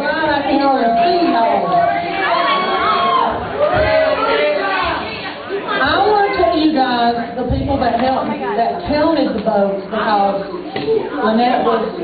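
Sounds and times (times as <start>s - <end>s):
woman speaking into microphone: 0.0s - 2.1s, 5.8s - 12.0s
audience chatter: 0.0s - 12.0s.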